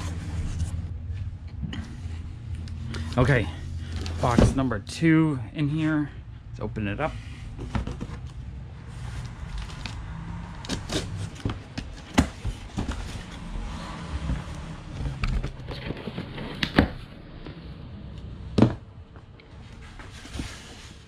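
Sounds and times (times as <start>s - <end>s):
cardboard rustling and scraping: 0.0s - 1.0s, 10.6s - 17.1s, 19.6s - 21.0s.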